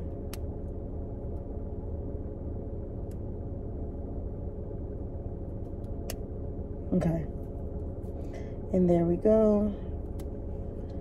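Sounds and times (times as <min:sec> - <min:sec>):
car cabin low hum: 0:00.0 - 0:11.0.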